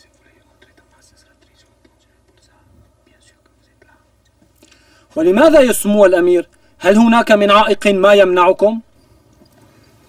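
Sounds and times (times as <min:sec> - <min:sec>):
man whispering: 0:00.0 - 0:04.6
low steady hum: 0:00.0 - 0:10.0.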